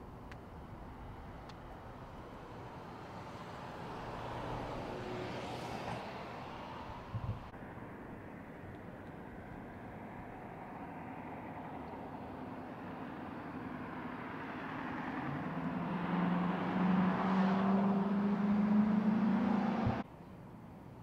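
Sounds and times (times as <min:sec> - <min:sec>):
vehicle engine hum: 0:00.0 - 0:21.0.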